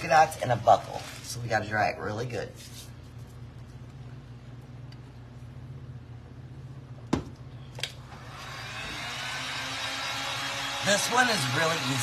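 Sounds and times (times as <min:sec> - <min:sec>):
heat gun fan whirring: 0:00.0 - 0:12.0.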